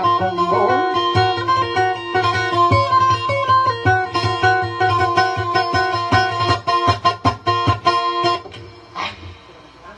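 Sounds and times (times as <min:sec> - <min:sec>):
plucked lute melody: 0:00.0 - 0:08.8.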